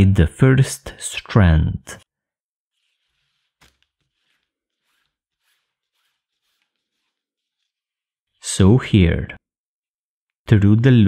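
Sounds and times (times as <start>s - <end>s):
cord rustling: 2.7s - 8.4s.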